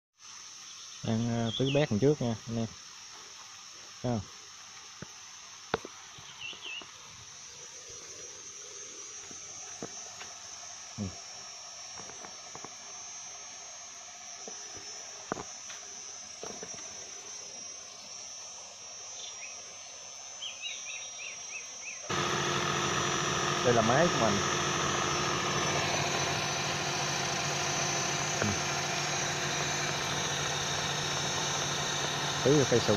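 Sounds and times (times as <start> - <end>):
high-pitched insect chorus: 0.2 - 32.9.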